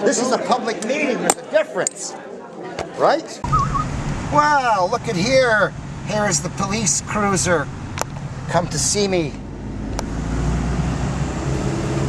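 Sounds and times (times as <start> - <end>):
car engine rumbling: 3.4 - 12.0.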